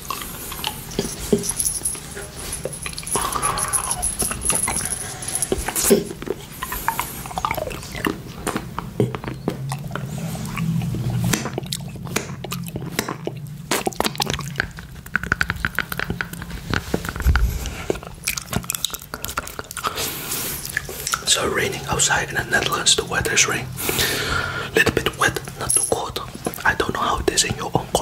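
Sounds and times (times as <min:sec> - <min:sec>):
man licking and sucking candy: 0:00.0 - 0:28.0
hard candy clicking against teeth: 0:10.6 - 0:17.2, 0:18.2 - 0:21.3.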